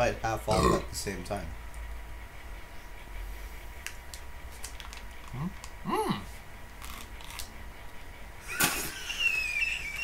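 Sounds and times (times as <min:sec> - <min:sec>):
man humming while chewing: 0:05.2 - 0:06.4.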